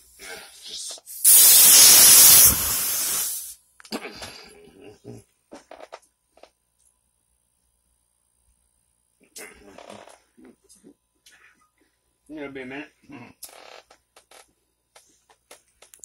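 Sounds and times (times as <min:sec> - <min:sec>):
high-pressure air hissing: 0:00.6 - 0:03.6.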